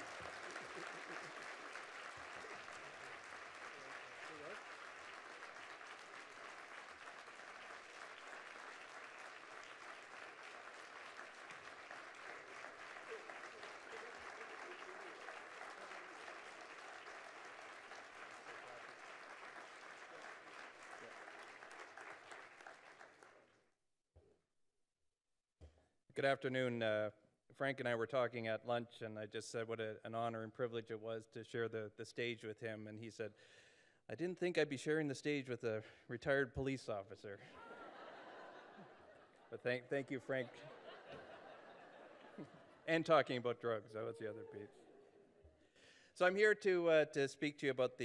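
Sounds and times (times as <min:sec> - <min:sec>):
audience applauding: 0:00.0 - 0:23.6.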